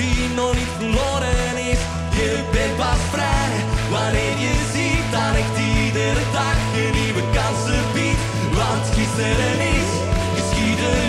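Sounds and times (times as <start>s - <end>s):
person singing: 0.0s - 11.0s
pop-rock band playing: 0.0s - 11.0s.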